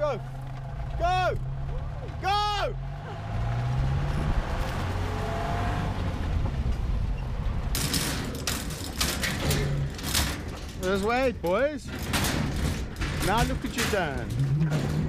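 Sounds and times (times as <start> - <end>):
low engine hum: 0.1 - 7.8
metal crate rattling: 7.6 - 15.0.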